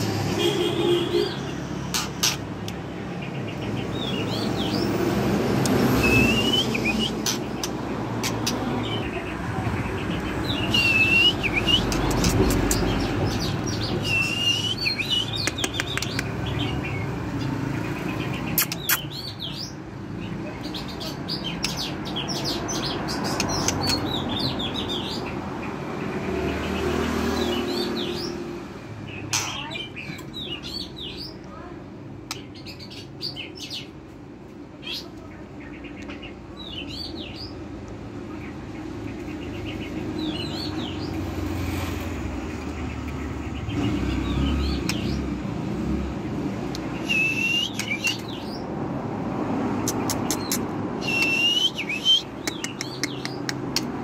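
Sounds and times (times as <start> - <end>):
bird singing whistles and clicks: 5.6 - 8.6, 10.7 - 13.2, 13.9 - 16.4, 18.5 - 19.5, 23.2 - 24.3, 44.7 - 45.2, 46.7 - 48.6, 49.8 - 54.0.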